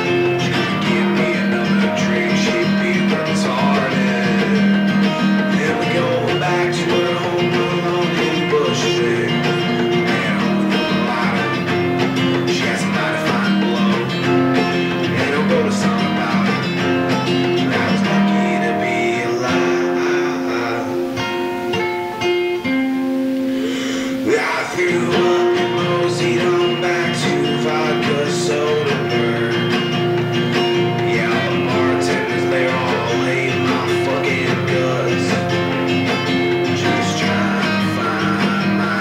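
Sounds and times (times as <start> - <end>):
guitar strumming and picking: 0.0 - 39.0.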